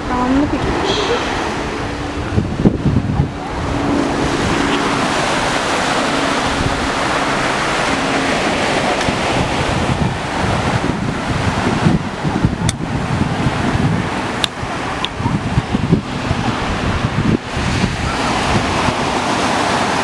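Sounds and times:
waves breaking on beach: 0.0s - 20.0s
wind buffeting microphone: 0.0s - 20.0s.

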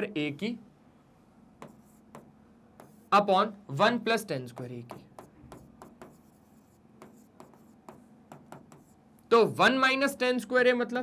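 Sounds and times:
stylus tapping and scratching screen: 1.6s - 3.3s, 4.2s - 9.3s.

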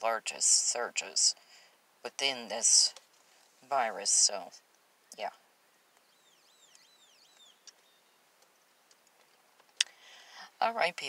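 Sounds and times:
faint bird whistling: 6.0s - 8.2s.

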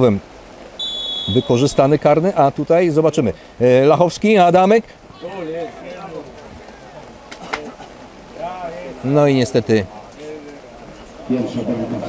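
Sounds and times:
distant voices shouting: 5.0s - 9.0s.

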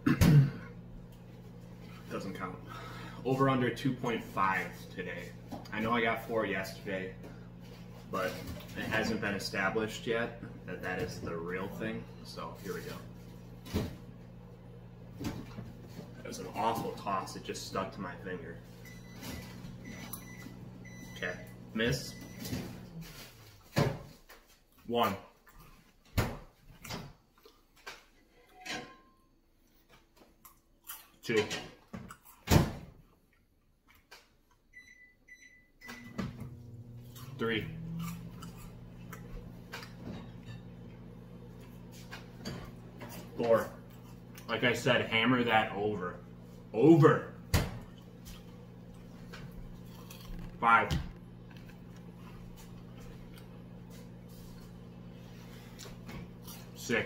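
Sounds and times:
microwave oven humming: 0.0s - 24.0s, 34.7s - 57.0s
microwave keypad beeping: 18.8s - 21.5s, 34.8s - 36.2s.

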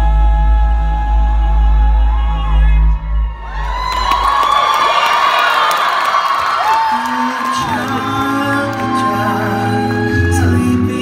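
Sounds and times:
a cappella singing: 0.0s - 2.8s, 6.9s - 11.0s
audience cheering and whooping: 3.0s - 10.6s.

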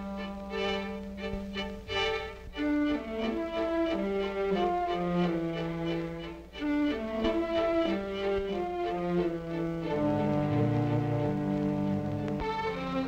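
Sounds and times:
low strings: 0.0s - 13.0s
orchestral strings playing held notes: 0.0s - 13.0s.

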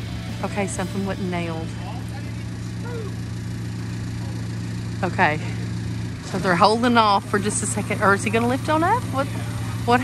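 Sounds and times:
diesel engine running steadily: 0.0s - 10.0s.

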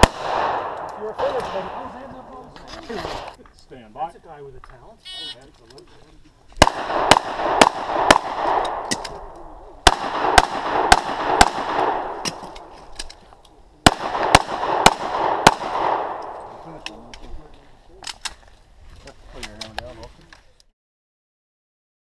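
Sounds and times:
handgun shots with echo: 0.0s - 1.9s, 6.6s - 12.7s, 13.8s - 16.4s.

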